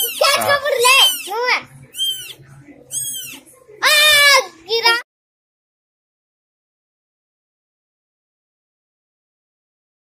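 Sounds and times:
kittens mewing: 0:00.0 - 0:04.0.

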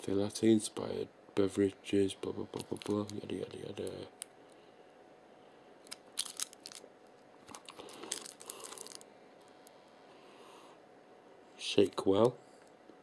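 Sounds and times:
plastic cup crinkling: 0:02.6 - 0:03.4, 0:05.8 - 0:09.1.

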